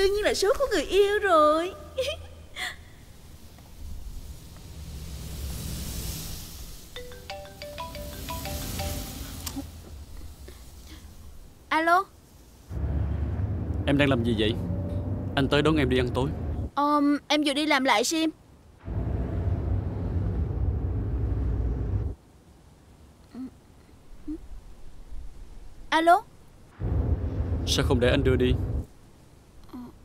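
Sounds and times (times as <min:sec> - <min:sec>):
marimba-like phone ringtone: 0:07.0 - 0:09.4
car engine and road rumble: 0:12.7 - 0:16.8, 0:18.8 - 0:22.2, 0:26.8 - 0:29.1.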